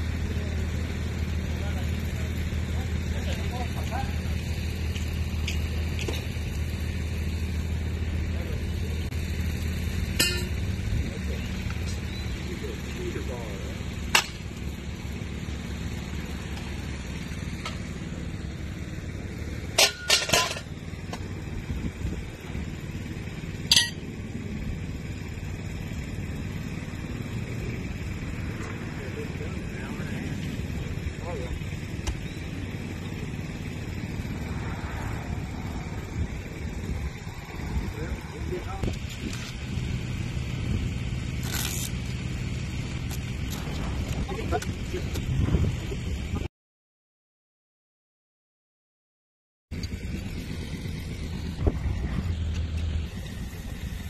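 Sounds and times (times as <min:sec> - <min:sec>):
engine droning: 0:00.0 - 0:46.5, 0:49.7 - 0:54.0
sharp metallic clinks: 0:10.1 - 0:10.8, 0:23.7 - 0:24.2.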